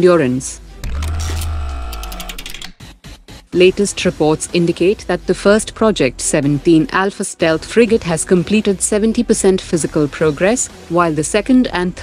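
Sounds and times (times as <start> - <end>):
ringing tone: 0.8 - 2.7
rapid mechanical ticks: 0.8 - 2.8.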